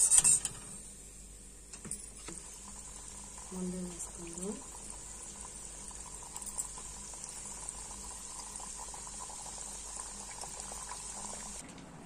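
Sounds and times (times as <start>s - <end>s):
dough sizzling in hot oil: 2.2s - 11.6s.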